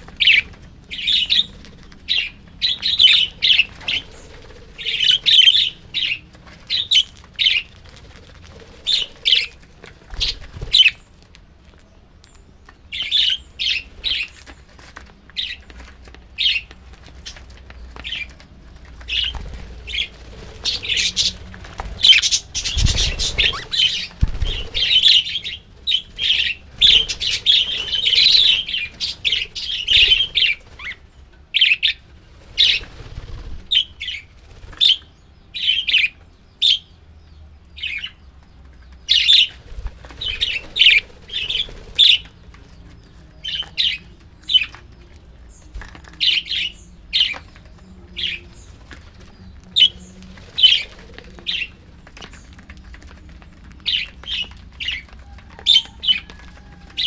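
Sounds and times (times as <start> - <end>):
wing flapping: 0.0 - 11.2, 13.6 - 35.1, 38.6 - 44.8, 47.1 - 57.0
budgerigars chirping: 0.2 - 7.7, 19.1 - 21.4, 22.0 - 32.0, 39.0 - 39.6, 40.2 - 44.8, 48.1 - 51.8, 53.8 - 56.4.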